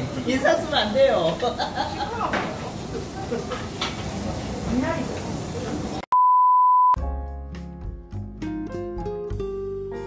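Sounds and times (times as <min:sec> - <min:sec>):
electronic beep: 0:06.1 - 0:07.0
music with plucked strings: 0:07.5 - 0:10.0.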